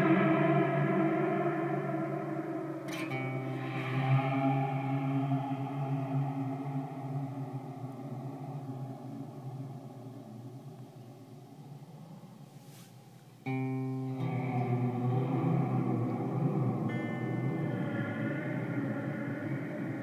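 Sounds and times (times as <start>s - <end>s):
electric guitar reverb wash: 0.0s - 12.4s, 13.5s - 20.0s.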